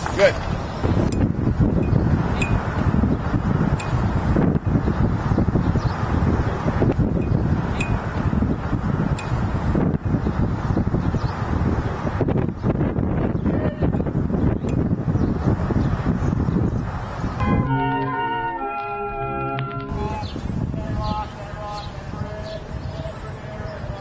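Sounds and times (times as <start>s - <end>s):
wind buffeting microphone: 0.0s - 17.6s, 19.9s - 24.0s.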